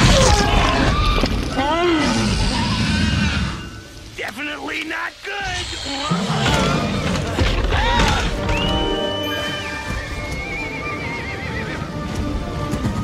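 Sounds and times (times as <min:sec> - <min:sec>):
dramatic orchestral music: 0:06.1 - 0:13.0.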